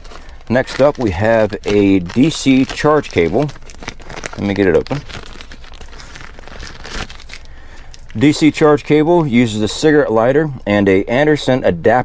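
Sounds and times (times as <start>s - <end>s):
plastic bag crinkling: 0.0s - 9.5s.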